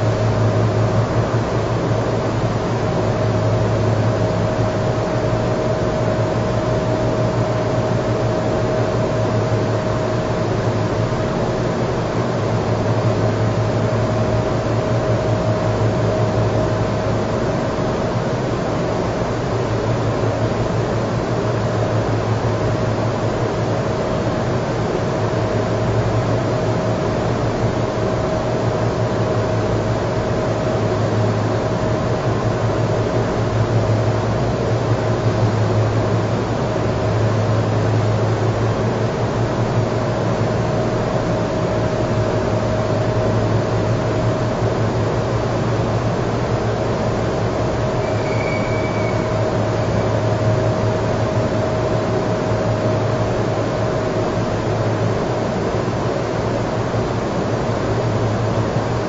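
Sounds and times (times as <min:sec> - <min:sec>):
strong low hum: 0:00.0 - 0:59.0
faint constant high tone: 0:47.7 - 0:53.6.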